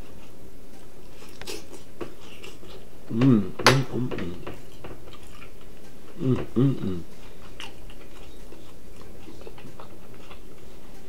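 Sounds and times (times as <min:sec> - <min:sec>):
steady hiss: 0:00.0 - 0:11.0
chewing with wet mouth clicks: 0:01.1 - 0:02.9, 0:04.6 - 0:06.2, 0:06.9 - 0:11.0.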